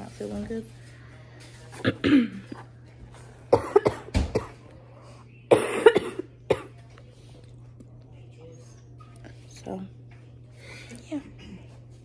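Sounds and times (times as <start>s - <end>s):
woman clearing her throat: 1.8s - 2.5s, 5.5s - 6.7s
woman coughing chesty cough: 1.8s - 2.5s, 3.5s - 4.6s, 5.5s - 6.8s.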